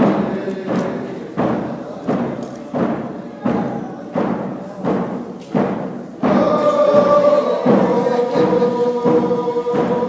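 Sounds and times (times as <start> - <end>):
faint group singing: 0.0 - 5.1, 5.7 - 10.0
drum struck in steady beat: 0.0 - 10.0.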